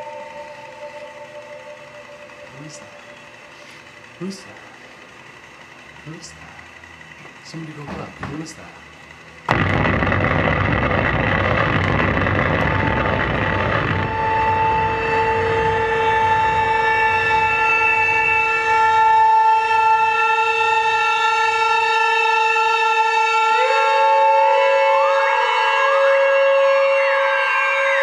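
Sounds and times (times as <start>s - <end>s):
loud wall of dense static: 0.0s - 28.0s
steady electronic drone: 0.0s - 28.0s.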